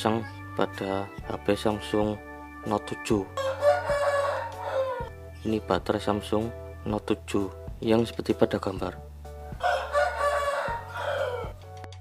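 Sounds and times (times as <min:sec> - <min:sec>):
rooster crowing: 0:03.4 - 0:05.2, 0:09.6 - 0:11.6.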